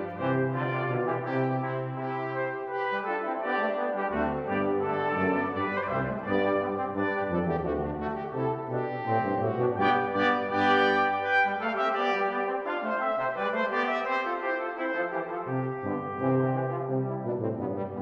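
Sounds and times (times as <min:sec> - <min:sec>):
brass quintet playing: 0:00.0 - 0:18.0.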